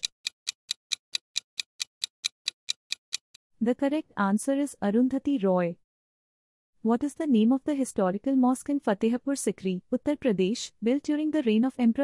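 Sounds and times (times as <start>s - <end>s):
clock ticking: 0.0s - 3.4s.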